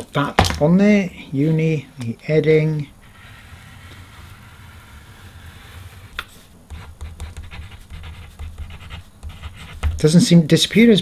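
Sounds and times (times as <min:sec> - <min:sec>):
marker scratching on paper: 0:03.0 - 0:10.2
light taps and bumps: 0:09.8 - 0:10.2.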